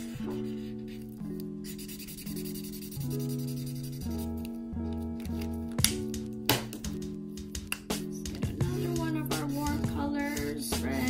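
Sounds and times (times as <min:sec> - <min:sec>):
marker rubbing on paper: 0:00.0 - 0:04.5, 0:08.4 - 0:11.0.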